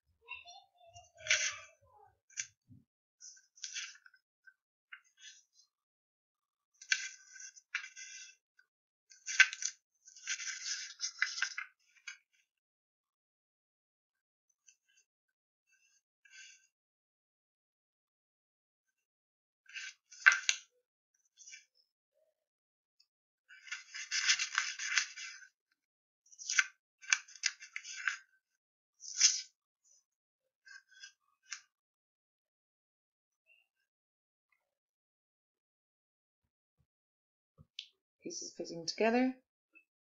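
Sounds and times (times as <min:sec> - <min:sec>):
paper rustling on cardboard: 0:23.6 - 0:25.4, 0:29.0 - 0:29.4.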